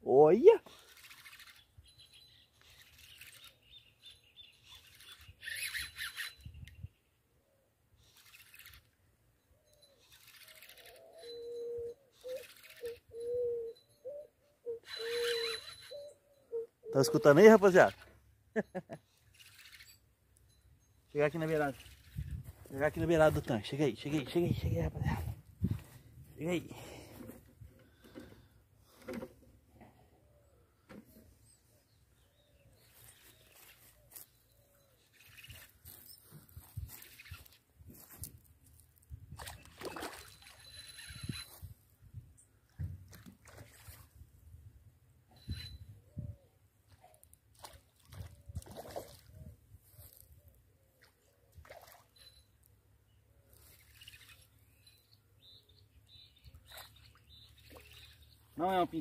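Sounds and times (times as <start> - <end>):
fishing reel clicks: 0.7 - 1.6, 4.8 - 6.8, 14.9 - 15.9
small water splashes: 39.4 - 40.7, 43.1 - 44.2, 47.5 - 49.4, 51.0 - 52.2, 56.6 - 58.3.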